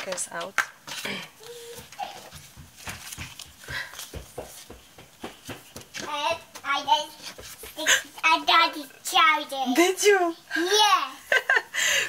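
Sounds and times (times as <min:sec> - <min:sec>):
light knocks and taps: 0:01.8 - 0:07.8.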